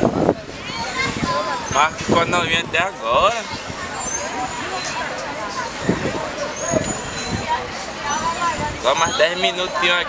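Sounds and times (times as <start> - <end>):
faint voices: 0.0 - 10.0
traffic hum: 0.0 - 10.0.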